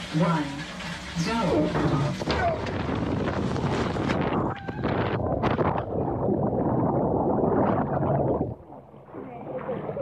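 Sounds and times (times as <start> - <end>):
muffled rushing water: 0.0 - 10.0.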